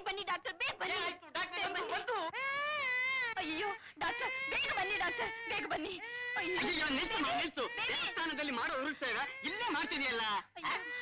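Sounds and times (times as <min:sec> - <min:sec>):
child crying and wailing: 0:02.3 - 0:11.0.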